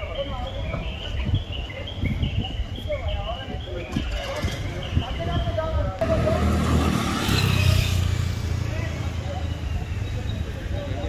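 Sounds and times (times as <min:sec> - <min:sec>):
people talking: 0:00.0 - 0:11.0
vehicle engine passing: 0:06.0 - 0:09.8.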